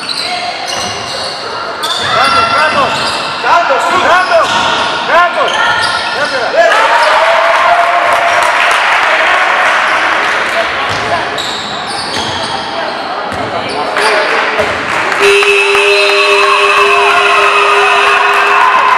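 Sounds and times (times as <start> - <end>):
crowd cheering: 6.5 - 10.8, 13.9 - 18.9
spectators shouting: 6.6 - 10.0, 15.2 - 18.9
long steady buzzer horn: 15.2 - 18.8.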